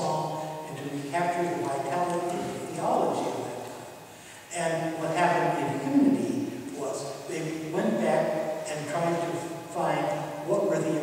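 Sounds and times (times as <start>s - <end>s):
man speaking: 0.0s - 3.7s, 4.4s - 11.0s.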